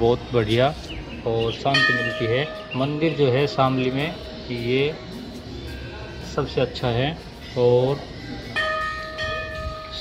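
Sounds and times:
bell ringing: 1.7 - 3.6.

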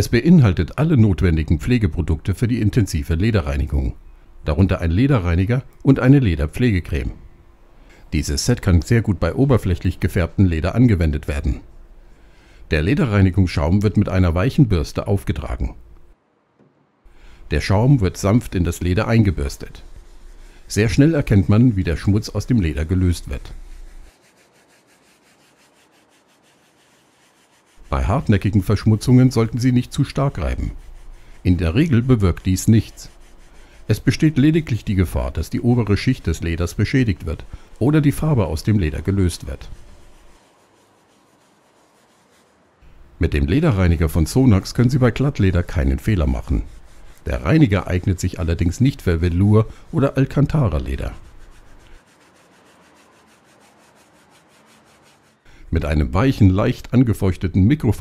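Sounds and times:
brush scrubbing leather: 18.0 - 42.6, 44.4 - 55.4.

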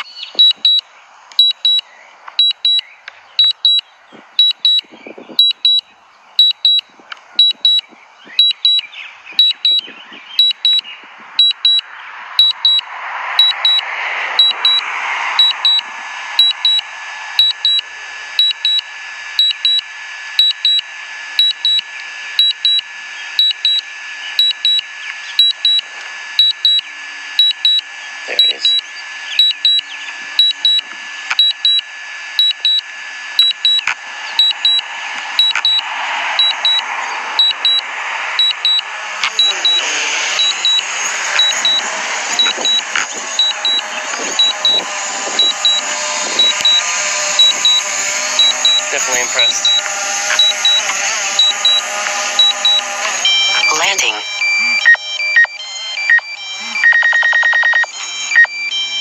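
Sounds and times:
short high beeps in pairs: 0.0 - 17.8, 18.4 - 59.0
rushing background noise: 0.0 - 19.4, 32.9 - 55.5.

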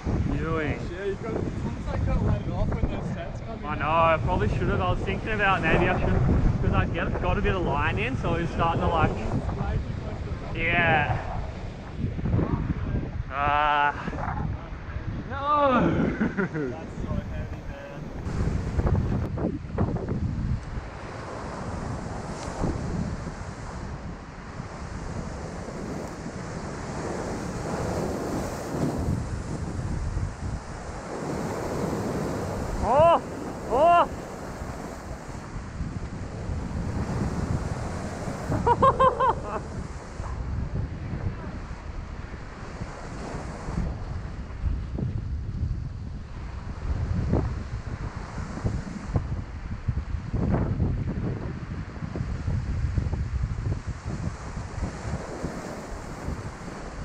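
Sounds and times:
surf breaking on rocky shore: 0.0 - 57.0
wind buffeting microphone: 0.0 - 57.0.

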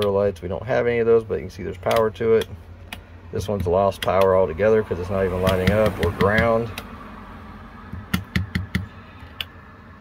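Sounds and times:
rocker switches clicking: 1.9 - 4.4.

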